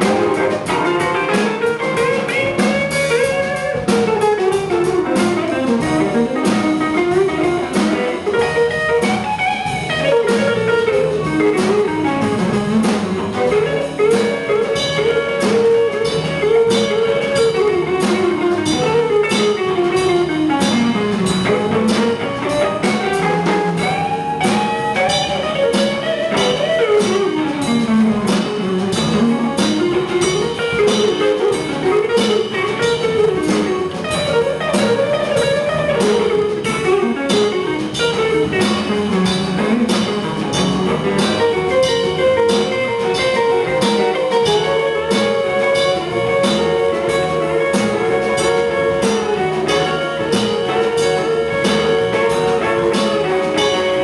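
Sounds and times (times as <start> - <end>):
drum kit beat: 0.0 - 54.0
electric bass: 0.0 - 54.0
electric guitar melody: 0.0 - 54.0.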